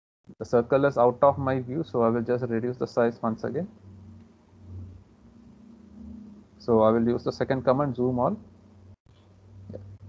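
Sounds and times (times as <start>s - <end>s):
faint low hum: 0.3s - 10.0s.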